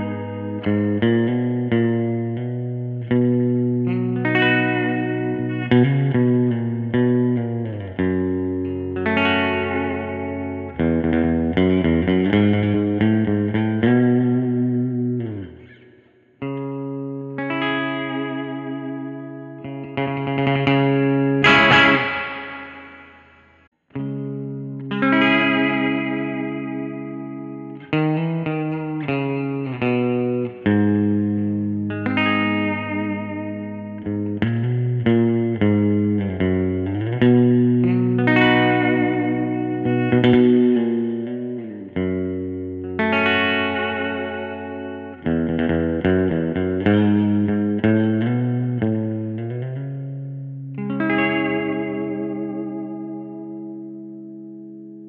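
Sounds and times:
electric guitar surf chords: 0.0 - 55.0
guitar vibrato pitch wavering: 0.0 - 55.0.

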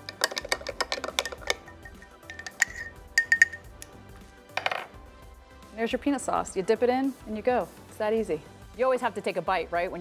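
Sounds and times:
spoon scraping in jar: 0.0 - 3.8
spoon clinking against glass: 0.0 - 3.9.

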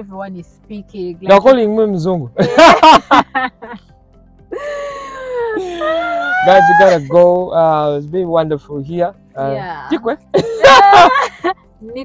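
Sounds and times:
high wailing tone: 5.8 - 7.0.

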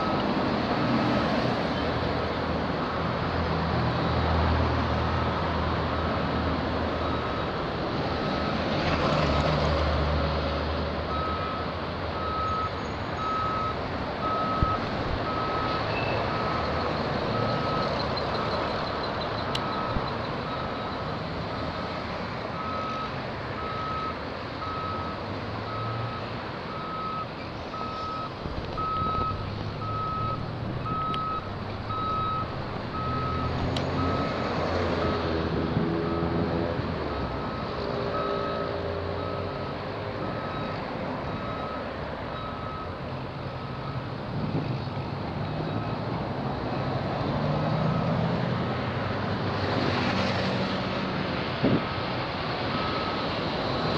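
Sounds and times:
passing road traffic: 0.0 - 53.9
back-up alarm beeping: 22.6 - 34.4.

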